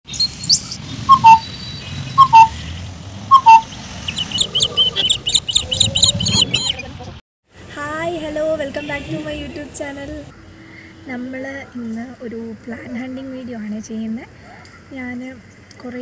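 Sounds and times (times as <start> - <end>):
high thin bird chirps: 0.1 - 6.8
bird two-note falling call: 1.1 - 1.4.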